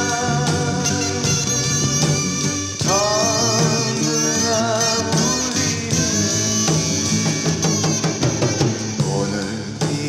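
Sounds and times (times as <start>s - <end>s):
bass drum and snare: 0.0s - 10.0s.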